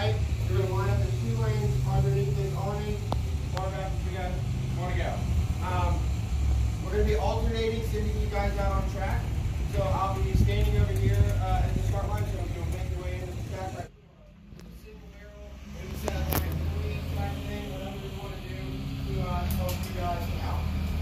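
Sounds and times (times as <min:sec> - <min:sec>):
people talking indistinctly: 0:00.0 - 0:06.2, 0:06.8 - 0:20.7
low rumble: 0:00.0 - 0:13.9.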